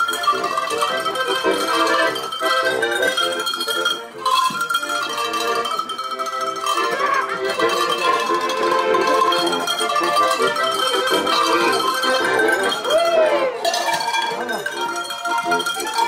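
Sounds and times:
button accordion: 0.0 - 16.0
tuned cowbells ringing melody: 0.0 - 16.0.

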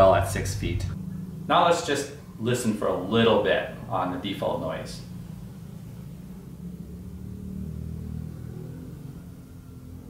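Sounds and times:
distant vehicle engine rumble: 0.0 - 10.0.

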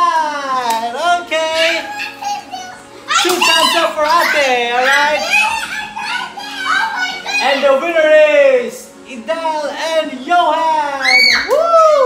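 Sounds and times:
children shouting and squealing: 1.3 - 8.0, 10.9 - 12.0.

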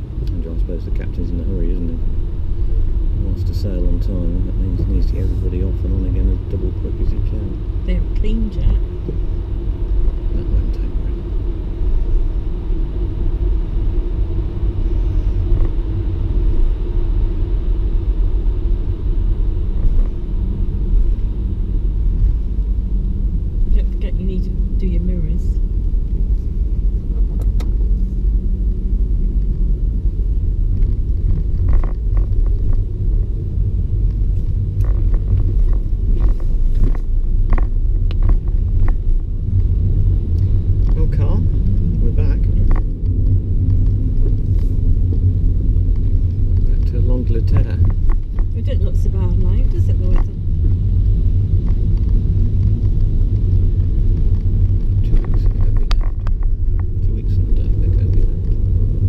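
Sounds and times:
car engine and tyres rumbling: 0.0 - 59.0.

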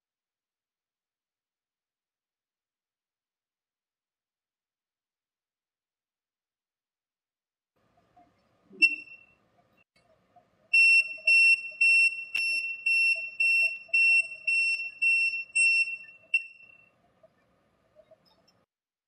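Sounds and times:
voltage tester beeping: 10.8 - 16.9.

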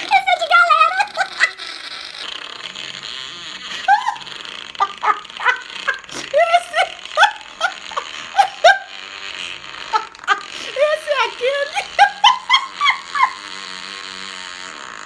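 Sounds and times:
woman laughing hard: 0.8 - 1.7, 3.7 - 13.5.

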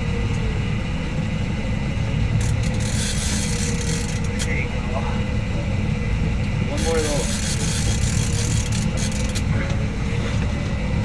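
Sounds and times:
boat motor rumbling: 0.0 - 11.0.

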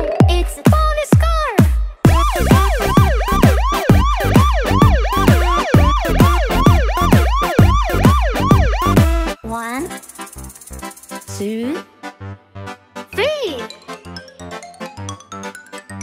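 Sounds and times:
light children's music: 0.0 - 1.4, 9.4 - 16.0
cartoon police siren yelping: 2.1 - 9.3.

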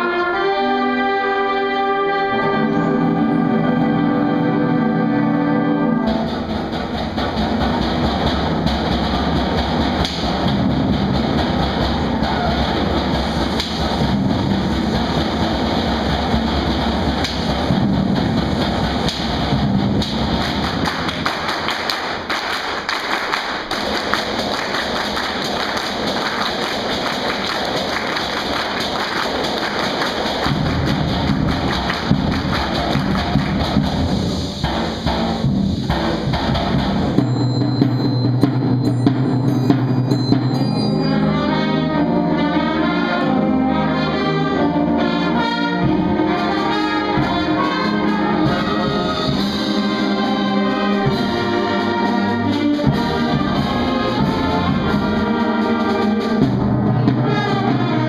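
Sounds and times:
concert band playing: 0.0 - 58.0
drum strokes: 2.8 - 42.3, 44.7 - 58.0.

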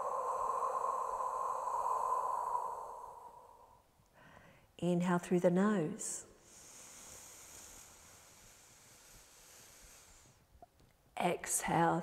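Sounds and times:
deep inhale through nose: 6.4 - 10.5.

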